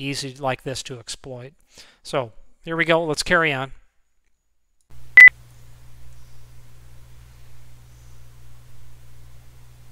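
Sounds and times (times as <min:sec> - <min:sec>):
low steady hum: 0:04.9 - 0:09.9.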